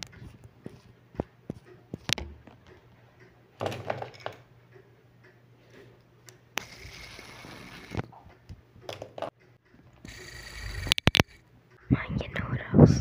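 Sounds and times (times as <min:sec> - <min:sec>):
fidget spinner whirring: 0:06.5 - 0:11.9.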